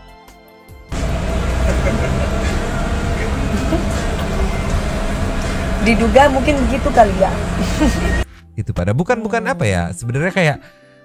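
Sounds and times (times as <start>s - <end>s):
car road noise rumble: 0.9s - 8.2s
faint voices: 1.0s - 8.2s.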